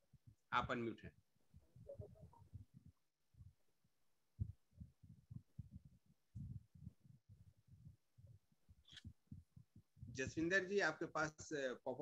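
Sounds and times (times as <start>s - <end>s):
faint low muffled thumps: 1.5s - 10.6s.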